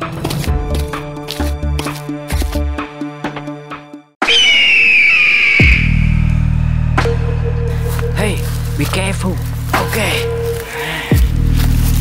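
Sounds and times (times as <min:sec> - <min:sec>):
deep music drone: 0:05.6 - 0:12.0.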